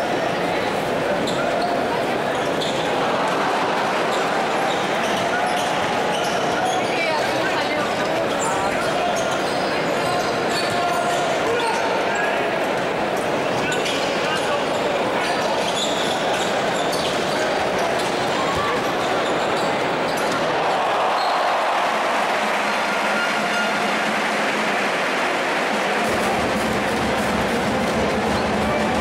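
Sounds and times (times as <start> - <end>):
crowd chatter: 0.0 - 29.0.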